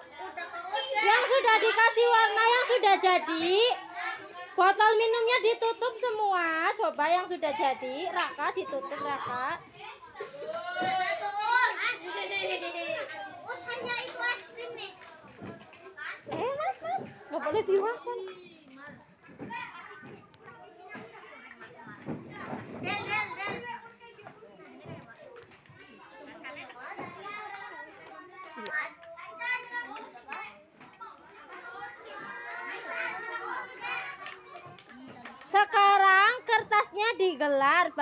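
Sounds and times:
children chattering and calling out: 0:00.0 - 0:38.0.

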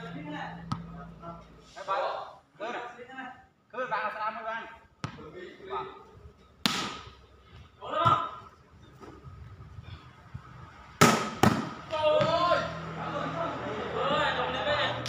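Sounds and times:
players shouting: 0:11.7 - 0:15.0.

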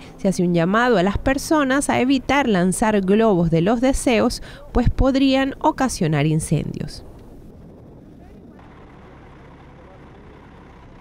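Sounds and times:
distant road traffic rumble: 0:00.0 - 0:11.0.

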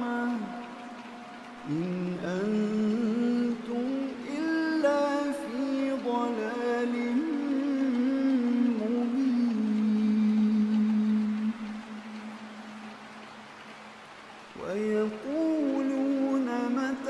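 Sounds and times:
man reciting melodically: 0:00.0 - 0:12.9, 0:14.5 - 0:17.0.

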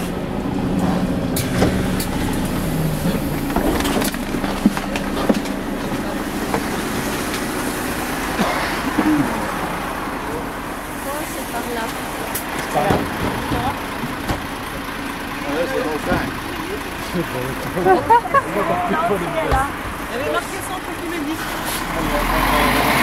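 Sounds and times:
bus engine hum: 0:00.0 - 0:23.0
indistinct voices: 0:00.0 - 0:23.0.

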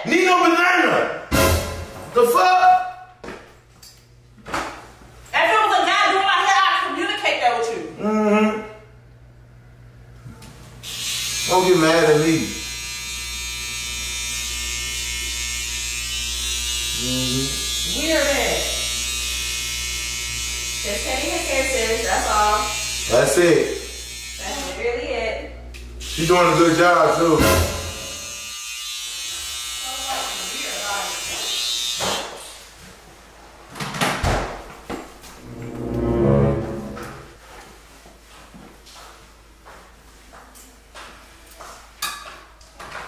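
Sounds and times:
electric hair clippers buzzing: 0:10.8 - 0:32.4.

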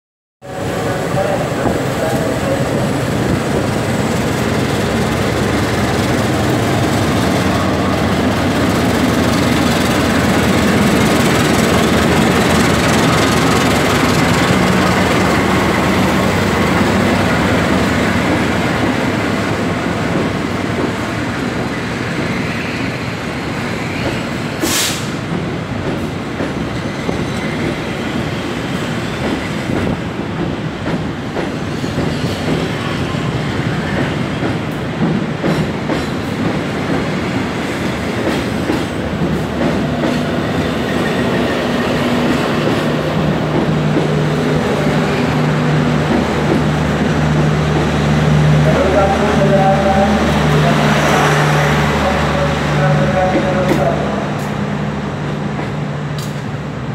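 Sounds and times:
train running rumble: 0:00.5 - 0:56.9
locomotive engine hum: 0:00.6 - 0:22.3
train wheels clattering over rail joints: 0:24.0 - 0:41.2.

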